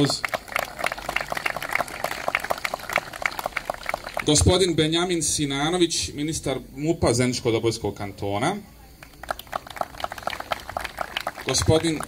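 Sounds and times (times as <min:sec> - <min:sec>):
small crowd applauding: 0:00.0 - 0:05.0, 0:08.9 - 0:12.0.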